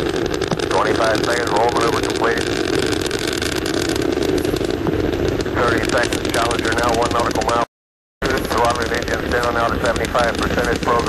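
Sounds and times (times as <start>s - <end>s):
rocket engines crackling: 0.0s - 11.0s.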